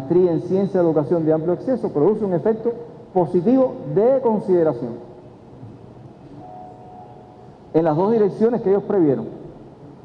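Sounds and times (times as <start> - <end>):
large hall background noise: 0.0 - 10.0
faint high tone: 6.3 - 7.6.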